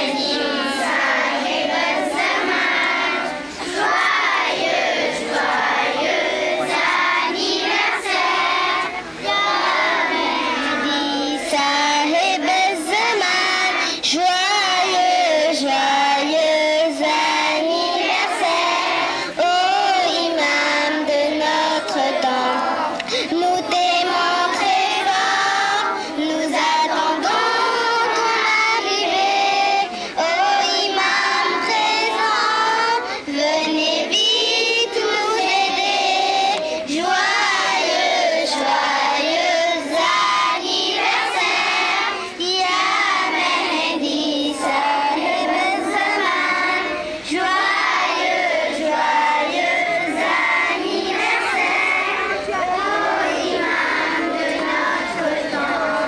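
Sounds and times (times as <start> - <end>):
children singing in chorus: 0.0 - 56.0.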